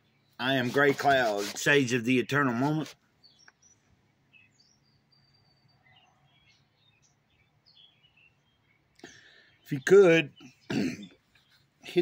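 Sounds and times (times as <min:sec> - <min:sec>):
faint bird chirps: 0:03.2 - 0:12.0.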